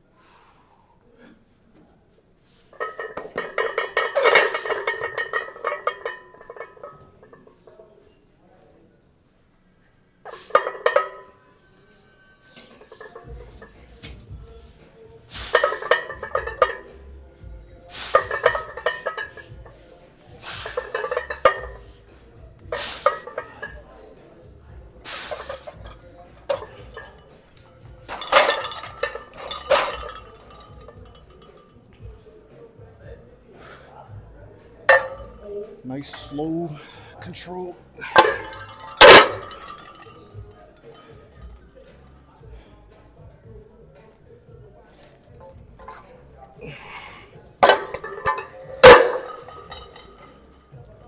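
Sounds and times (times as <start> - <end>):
weight plates clanking on barbell: 20.4 - 21.8, 28.0 - 31.7, 38.0 - 41.6, 47.6 - 50.9.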